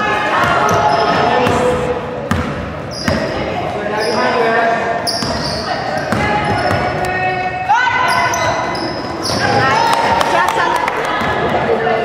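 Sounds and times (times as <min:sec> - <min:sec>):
sneaker squeaks: 0:00.4 - 0:10.1
basketball bouncing on wooden floor: 0:02.3 - 0:03.3
people shouting: 0:07.1 - 0:08.5.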